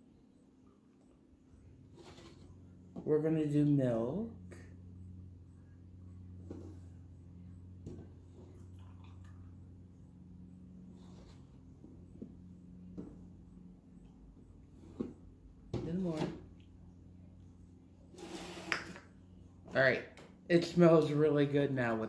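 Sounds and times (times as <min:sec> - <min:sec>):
steady low hum: 0:00.0 - 0:22.0
milk pouring: 0:08.4 - 0:09.9.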